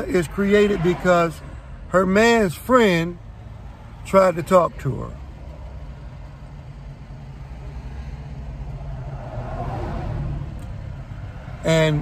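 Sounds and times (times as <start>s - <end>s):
vehicle passing outside: 0.0s - 2.1s, 7.2s - 12.0s.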